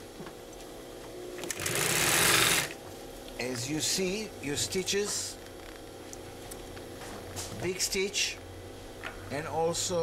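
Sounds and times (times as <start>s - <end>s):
faint steady hum: 0.0s - 10.0s
industrial sewing machine stitching: 1.4s - 2.8s.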